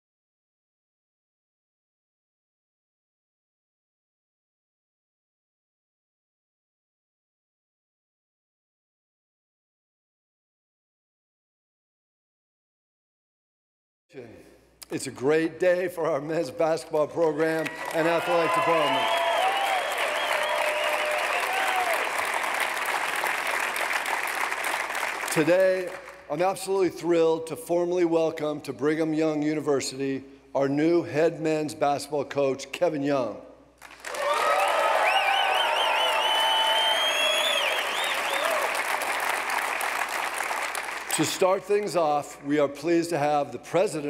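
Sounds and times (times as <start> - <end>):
voices cheering: 17.2 - 22.4, 34.1 - 39.1
audience applauding: 17.2 - 26.3, 33.8 - 41.5.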